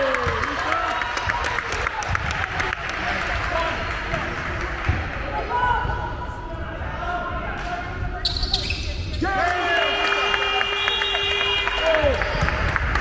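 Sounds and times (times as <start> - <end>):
voices in a sports hall: 0.0 - 13.0
shoe squeaks on court: 8.2 - 9.2.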